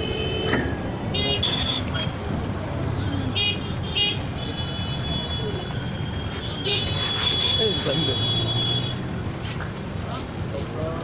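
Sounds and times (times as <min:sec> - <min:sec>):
traffic engines rumbling: 0:00.0 - 0:11.0.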